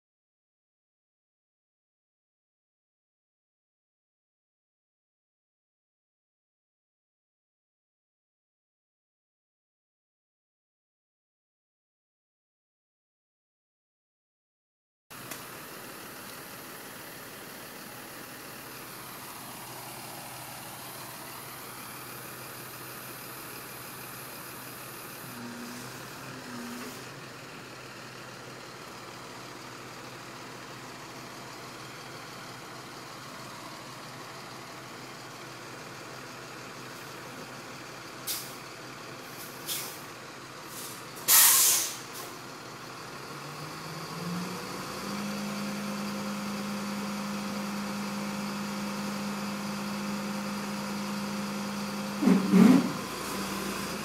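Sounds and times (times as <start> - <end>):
truck engine running: 15.1 - 54.0
air hisses: 40.7 - 42.1.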